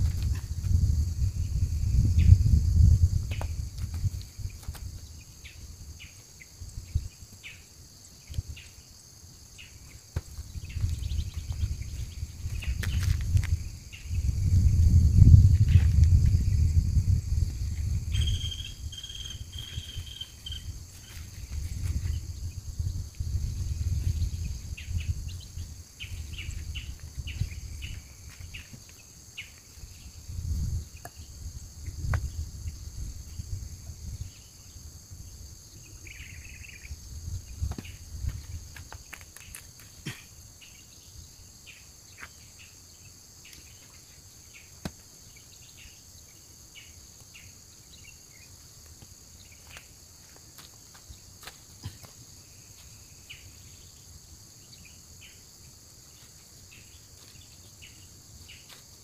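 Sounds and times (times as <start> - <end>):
wind rumbling on microphone: 0.0 - 7.4, 10.2 - 39.8
insects droning: 0.0 - 59.0.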